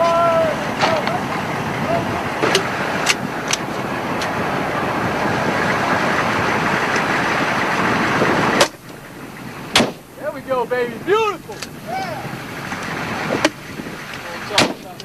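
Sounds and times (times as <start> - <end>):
vehicle engine running: 0.0 - 15.0
rifle shots: 9.7 - 10.0, 14.5 - 14.8.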